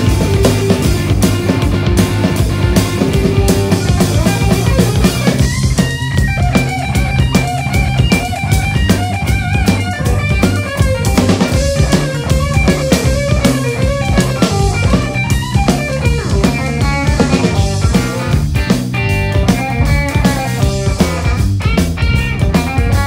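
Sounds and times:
drum kit: 0:00.0 - 0:23.0
electric bass: 0:00.0 - 0:23.0
electric guitar: 0:00.0 - 0:23.0.

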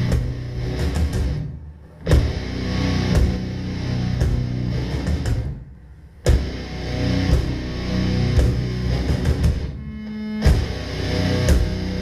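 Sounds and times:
death metal band playing: 0:00.0 - 0:05.6, 0:06.3 - 0:12.0.

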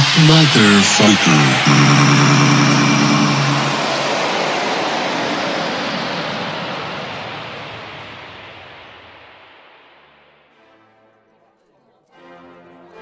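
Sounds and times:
held synth chord: 0:00.0 - 0:05.0.

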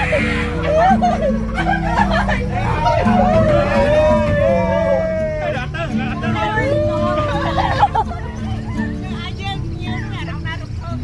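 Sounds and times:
boat engine rumbling: 0:00.0 - 0:11.0
people chatting: 0:00.0 - 0:11.0.

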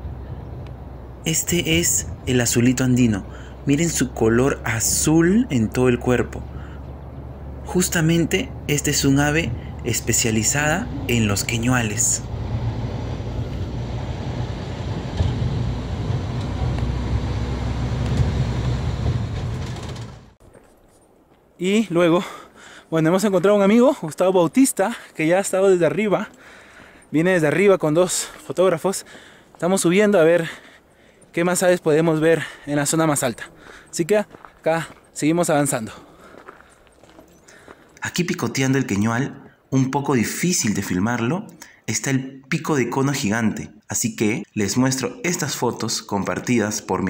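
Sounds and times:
low rumble: 0:06.3 - 0:20.4
faint footsteps on a trail: 0:20.4 - 0:38.1.

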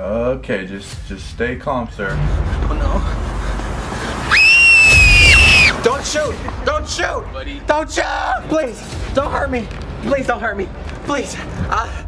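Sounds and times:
shrill scream of fright: 0:04.3 - 0:05.8.

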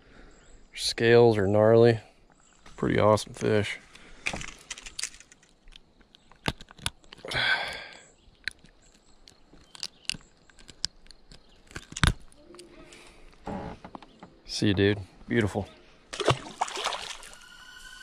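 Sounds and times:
brief rustle: 0:03.9 - 0:05.6
handling clicks and knocks: 0:04.3 - 0:07.3, 0:08.3 - 0:12.4.

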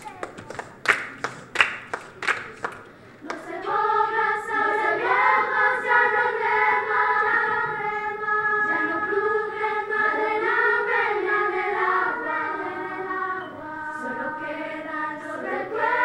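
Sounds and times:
children's choir singing: 0:03.2 - 0:16.0.

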